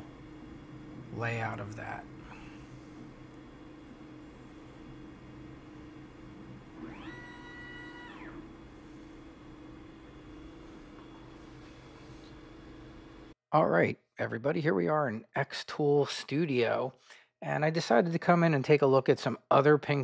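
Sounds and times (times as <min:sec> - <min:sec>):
low machine hum: 0:00.0 - 0:13.4
gantry motors whining: 0:01.4 - 0:13.3.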